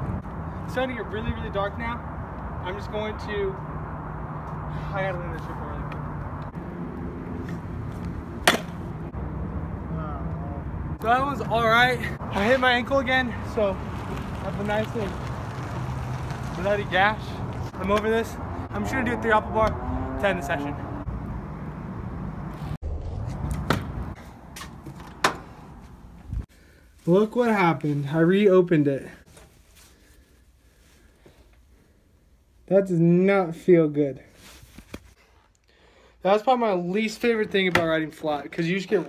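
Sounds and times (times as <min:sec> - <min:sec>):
scooter landing clack: 0:08.4 - 0:08.8
scooter rolling on asphalt: 0:11.4 - 0:19.4.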